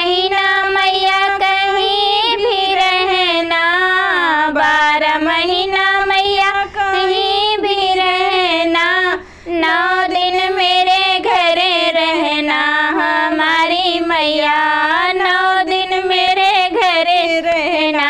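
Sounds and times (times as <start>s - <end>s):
two women singing devotional song: 0.0s - 18.0s.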